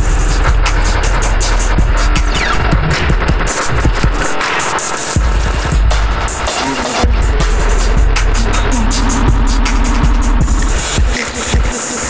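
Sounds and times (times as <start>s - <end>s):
harsh electronic noise music: 0.0s - 12.0s
heavy bass rumble: 0.0s - 12.0s
stuttering high hiss: 0.0s - 12.0s.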